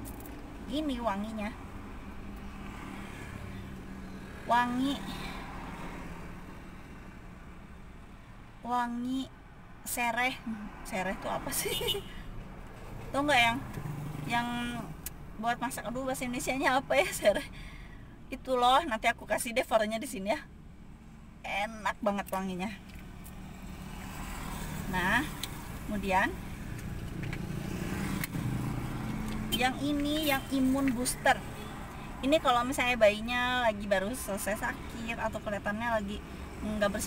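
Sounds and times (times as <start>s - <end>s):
road traffic hum inside car: 0.0s - 37.0s.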